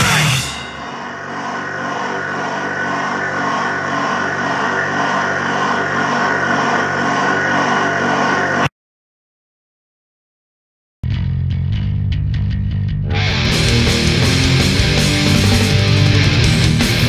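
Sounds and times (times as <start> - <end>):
buzzing drone: 0.0 - 8.7, 13.1 - 17.0.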